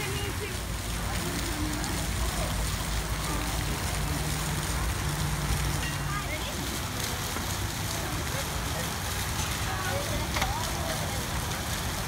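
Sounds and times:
faint distant voices: 0:00.0 - 0:12.0
water rushing from waterfall: 0:00.0 - 0:12.0.

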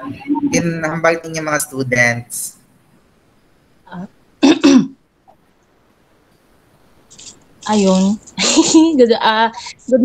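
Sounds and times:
woman clearing her throat: 0:04.4 - 0:05.0.

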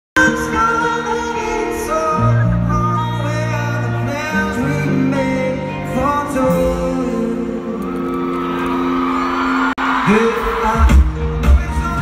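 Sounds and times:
person singing: 0:00.2 - 0:08.4, 0:10.0 - 0:12.0
live pop music: 0:00.2 - 0:12.0.

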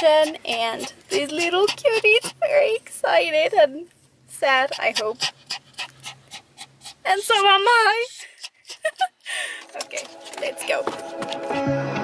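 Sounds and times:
small dog panting quickly: 0:00.0 - 0:02.6, 0:04.6 - 0:11.2.

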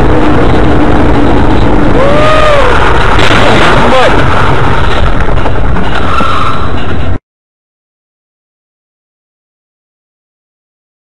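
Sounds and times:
rumble of engine and road: 0:00.0 - 0:07.2.

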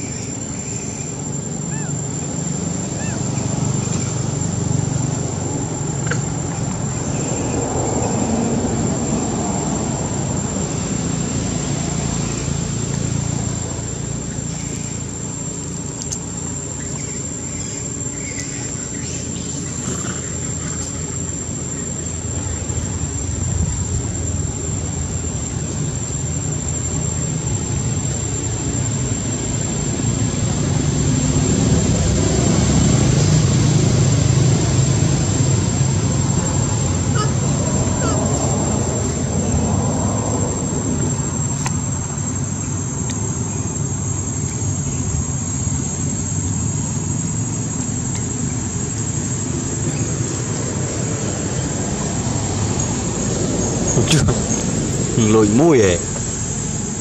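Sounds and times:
high-pitched whine: 0:00.0 - 0:57.0
steady low rumble: 0:17.3 - 0:57.0.

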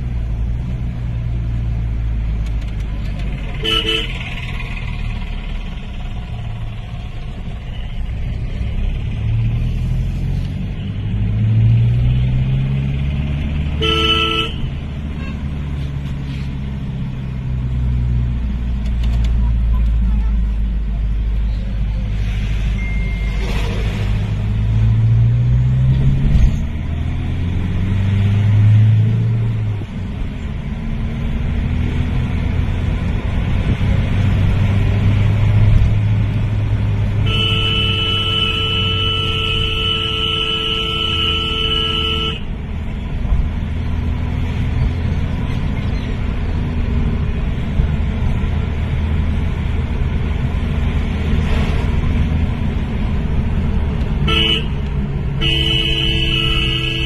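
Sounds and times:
diesel tractor engines droning: 0:00.0 - 0:57.0
vehicle horn honking: 0:03.5 - 0:04.4, 0:13.8 - 0:15.4, 0:37.2 - 0:42.5, 0:54.2 - 0:54.8, 0:55.4 - 0:57.0.

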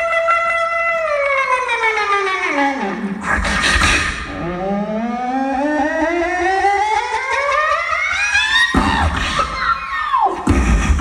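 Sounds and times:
vocal sweep rising in pitch: 0:02.6 - 0:10.2.

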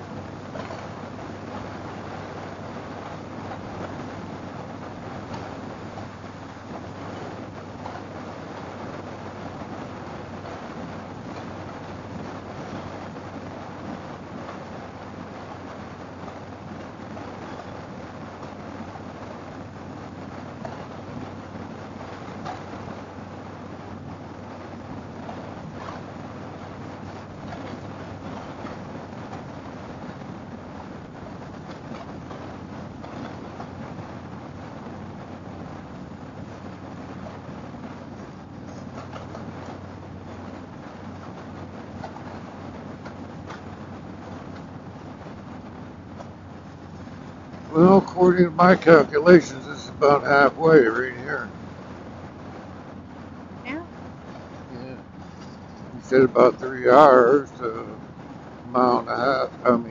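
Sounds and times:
motorcycle engine drone: 0:00.0 - 0:59.9
road noise: 0:00.0 - 0:59.9.

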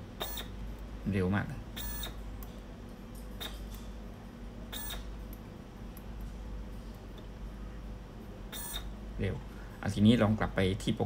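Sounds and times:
faint steady hum: 0:00.0 - 0:11.0
short electronic beeps: 0:01.8 - 0:02.2, 0:04.7 - 0:05.0.

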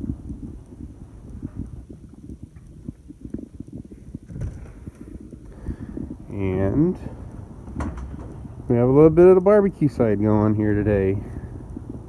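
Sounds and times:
footsteps while walking: 0:00.0 - 0:09.9.

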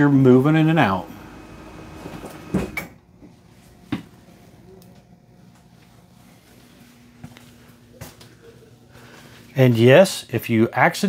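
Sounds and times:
hydraulic mechanical hum: 0:00.0 - 0:11.0.

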